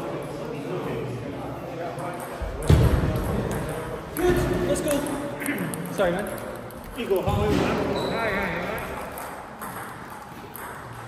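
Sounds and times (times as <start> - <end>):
voices talking in echoing hall: 0.0 - 11.0.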